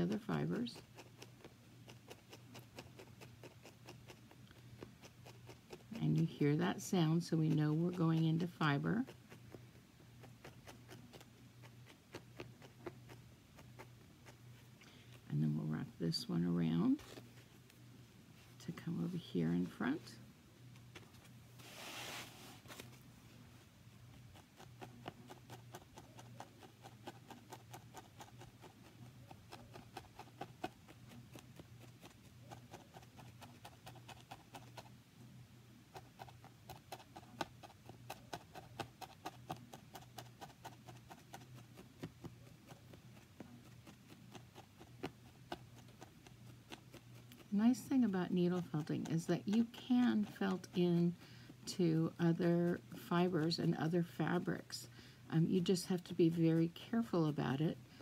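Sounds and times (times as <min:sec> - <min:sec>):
felting needle poking wool: 0:00.0 - 0:17.8, 0:24.0 - 0:35.0, 0:35.9 - 0:58.0
fibre rustling: 0:20.7 - 0:23.7.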